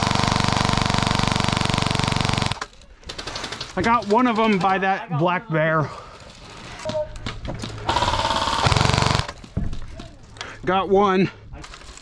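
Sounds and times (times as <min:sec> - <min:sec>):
airsoft gun full-auto burst: 0:00.0 - 0:03.6, 0:07.9 - 0:09.4.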